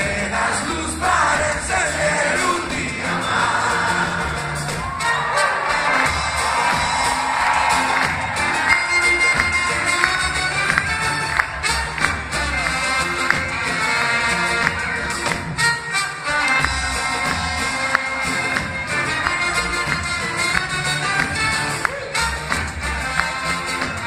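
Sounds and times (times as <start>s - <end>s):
accordion: 0.0s - 24.0s
crowd cheering: 0.0s - 24.0s
drum kit: 0.0s - 24.0s.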